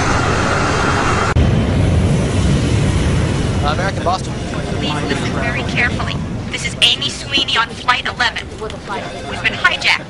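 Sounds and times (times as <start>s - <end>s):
jet engines rushing: 0.0s - 10.0s
indistinct voices: 3.6s - 10.0s.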